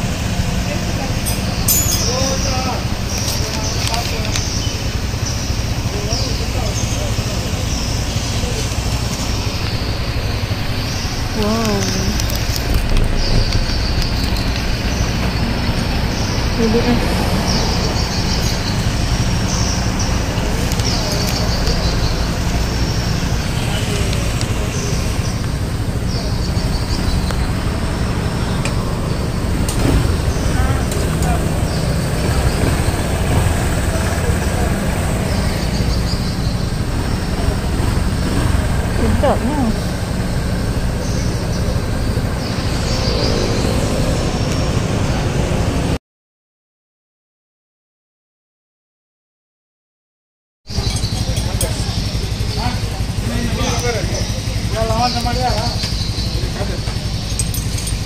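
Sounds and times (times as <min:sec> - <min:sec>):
engine idling: 0:00.0 - 0:46.0, 0:50.7 - 0:58.0.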